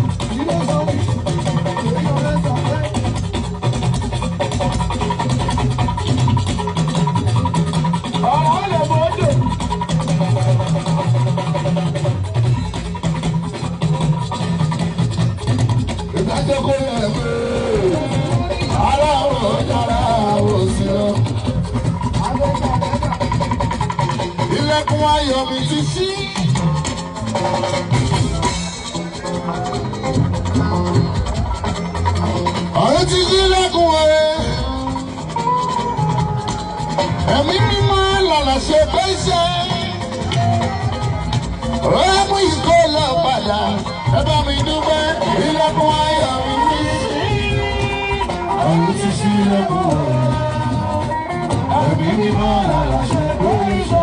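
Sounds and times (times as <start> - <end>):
bass line: 0.0 - 54.0
fast drum rhythm: 0.0 - 54.0
percussion: 0.0 - 54.0
person singing: 16.2 - 21.6, 32.6 - 54.0.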